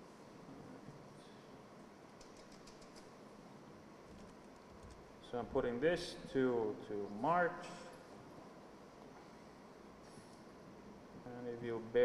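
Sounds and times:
keystrokes on computer keyboard: 2.2s - 3.1s.

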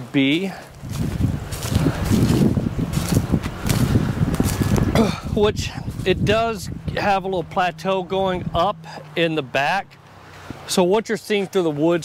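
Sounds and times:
footsteps crunching through dry leaves: 0.1s - 4.9s, 5.8s - 7.7s
wind rumble on microphone: 0.7s - 10.6s.

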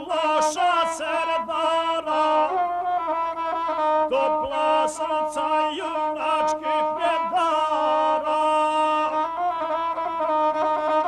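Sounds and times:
man singing: 0.0s - 3.0s, 3.7s - 9.8s
bowed fiddle melody: 0.0s - 11.0s.

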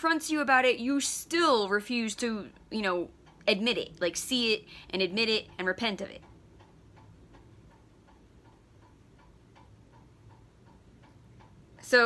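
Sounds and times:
fast faint ticking: 0.3s - 12.0s.

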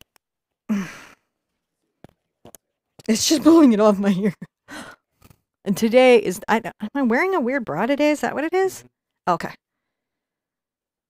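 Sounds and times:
woman sighing: 0.7s - 1.2s, 4.7s - 5.0s.

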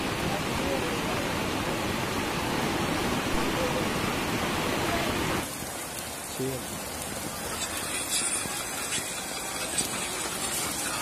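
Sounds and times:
loud rushing water: 0.0s - 11.0s.

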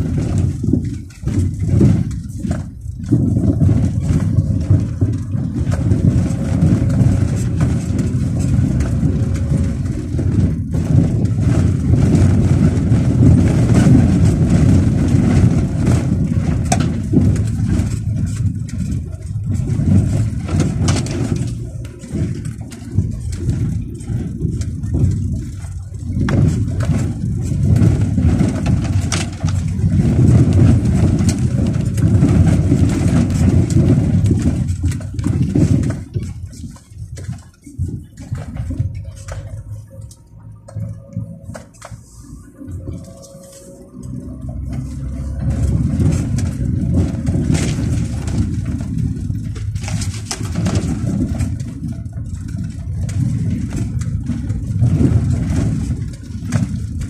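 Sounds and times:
knocks from bumps: 0.0s - 39.9s, 43.9s - 57.0s
car rumbling over dirt track: 0.0s - 57.0s.

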